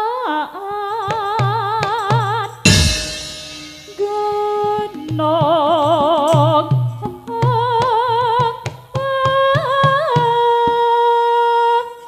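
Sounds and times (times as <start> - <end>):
drum strokes: 2.7 - 5.8.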